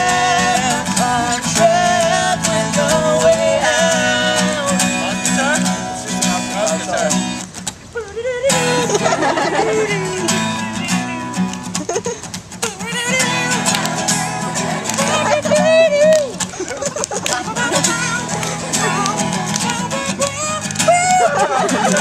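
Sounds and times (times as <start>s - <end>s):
man singing: 0.0s - 11.4s, 12.6s - 16.4s, 17.3s - 22.0s
acoustic guitar strumming: 0.0s - 22.0s.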